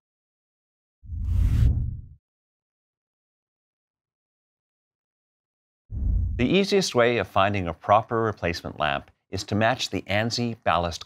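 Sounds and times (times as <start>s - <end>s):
deep transition whoosh: 1.1s - 2.2s, 5.9s - 6.5s.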